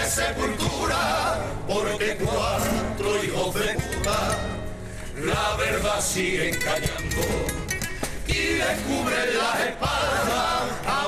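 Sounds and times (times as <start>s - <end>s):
men's voices singing in a group: 0.0s - 11.0s.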